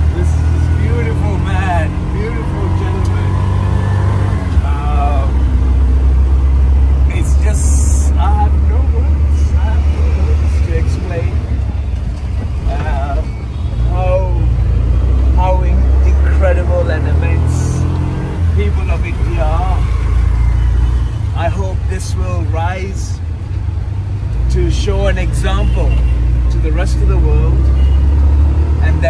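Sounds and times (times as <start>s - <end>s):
small engine rumbling: 0.0s - 29.0s.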